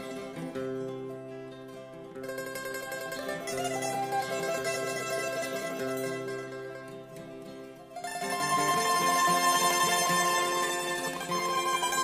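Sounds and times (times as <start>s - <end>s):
folk music with plucked strings: 0.0s - 12.0s.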